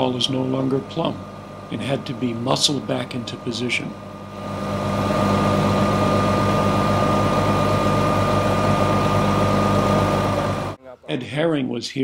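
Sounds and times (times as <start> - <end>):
machinery engine running with whine: 0.0 - 10.8.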